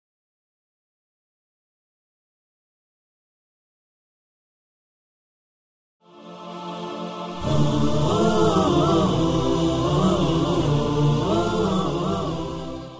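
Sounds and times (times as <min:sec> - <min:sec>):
wordless chanted vocal melody: 0:06.0 - 0:12.9
low drone: 0:06.4 - 0:12.9.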